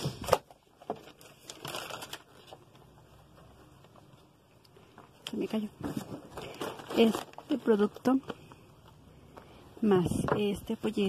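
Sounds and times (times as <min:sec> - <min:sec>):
packaging rustling in cardboard box: 0:00.0 - 0:03.3, 0:05.7 - 0:08.2.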